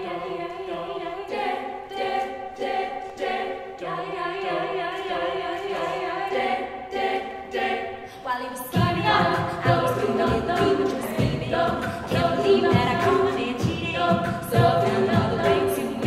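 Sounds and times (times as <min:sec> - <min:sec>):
a cappella group singing: 0:00.0 - 0:16.0.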